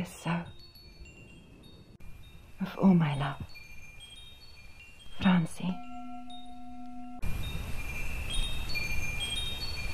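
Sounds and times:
wind chimes tinkling: 0.0s - 9.9s
held tone: 5.1s - 7.6s.

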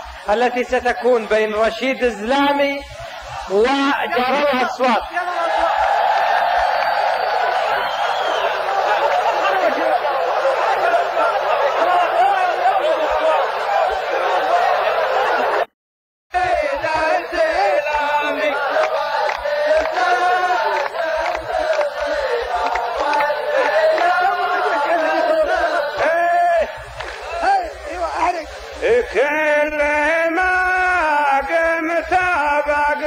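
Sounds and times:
men chanting in chorus: 16.3s - 33.0s.

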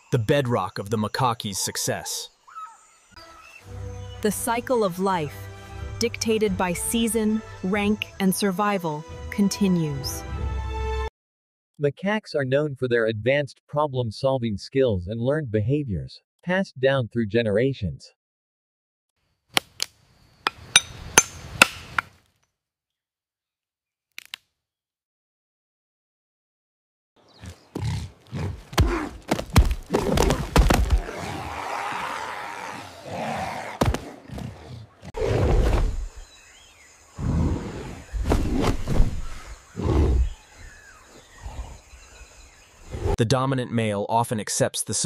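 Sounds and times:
gorilla grunting: 27.4s - 29.2s, 29.9s - 35.8s, 39.3s - 40.4s
insects buzzing: 35.2s - 43.2s.

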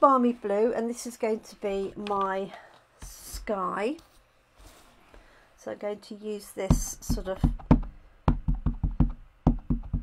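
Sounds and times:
ink pad tapping on stamp: 6.7s - 10.0s.

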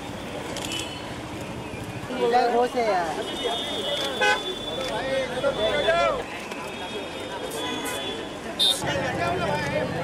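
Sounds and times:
traffic: 0.0s - 10.0s
car horn toot: 3.6s - 4.7s.

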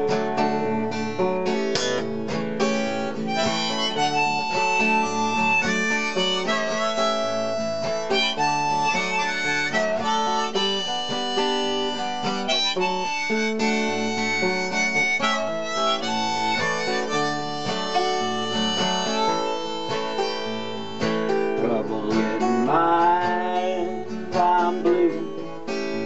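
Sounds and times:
acoustic guitar accompaniment: 0.0s - 26.0s
blues harmonica: 0.0s - 26.0s.

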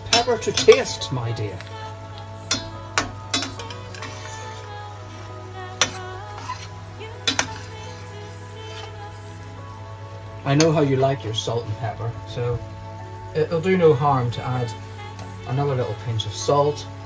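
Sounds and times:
background music: 0.0s - 17.0s
spatula scraping a metal pan: 2.5s - 4.7s, 5.8s - 9.0s.

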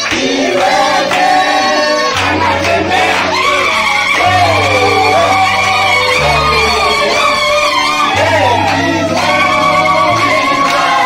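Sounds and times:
choir singing: 0.0s - 11.0s
music: 0.0s - 11.0s.

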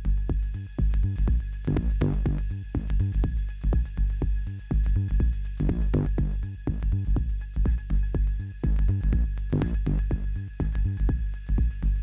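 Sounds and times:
kick drum: 0.0s - 12.0s
synthesizer techno groove: 0.0s - 12.0s.

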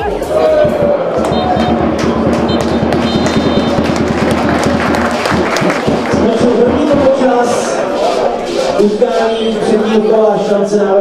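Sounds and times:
singing over fast dense beat: 0.0s - 11.0s.

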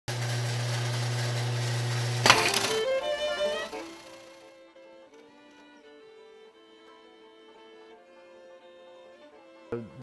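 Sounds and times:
sewing machine motor humming: 0.1s - 4.6s.

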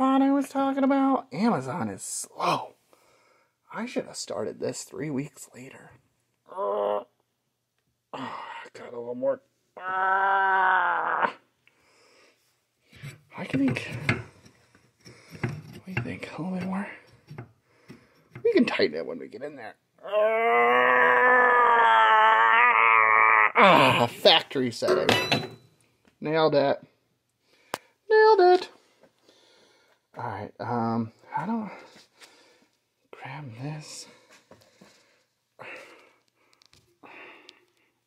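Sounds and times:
man straining groan: 6.5s - 7.2s, 9.8s - 11.5s, 20.0s - 24.2s.

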